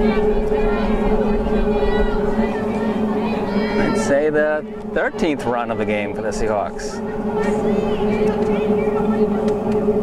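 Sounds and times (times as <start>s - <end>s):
faint voices: 0.0s - 10.0s
mechanical hum: 0.0s - 10.0s.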